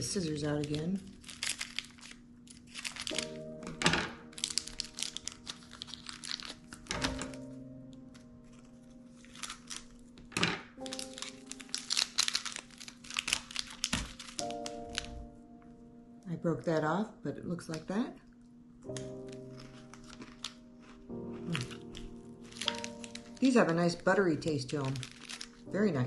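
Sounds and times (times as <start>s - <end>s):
plastic wrapper crinkling: 0.0s - 15.4s, 17.6s - 26.0s
scissors cutting plastic: 0.2s - 7.5s, 8.1s - 15.2s, 18.8s - 23.5s, 24.6s - 25.7s.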